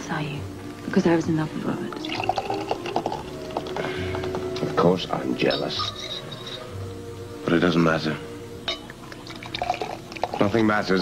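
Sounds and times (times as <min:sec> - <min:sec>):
soft background music: 0:00.0 - 0:11.0
champagne pouring into glass: 0:02.0 - 0:04.3, 0:09.1 - 0:11.0.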